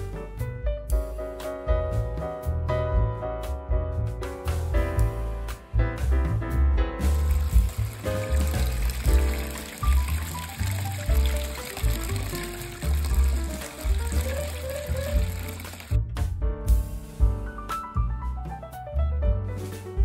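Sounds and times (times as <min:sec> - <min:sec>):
music with steady bass line: 0:00.0 - 0:20.0
liquid splashing into bucket: 0:07.1 - 0:16.0.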